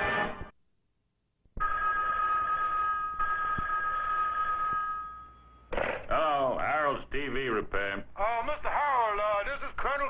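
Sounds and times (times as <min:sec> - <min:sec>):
cartoon two-tone telephone ring: 0:01.6 - 0:05.4.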